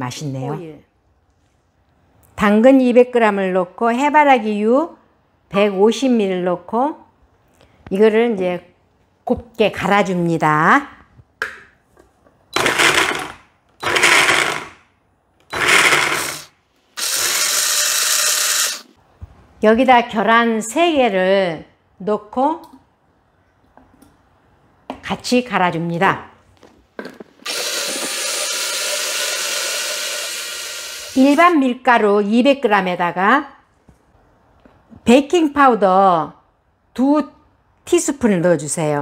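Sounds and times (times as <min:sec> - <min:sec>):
blender grinding carrots: 0:12.6 - 0:14.7, 0:15.5 - 0:18.9, 0:27.5 - 0:31.4.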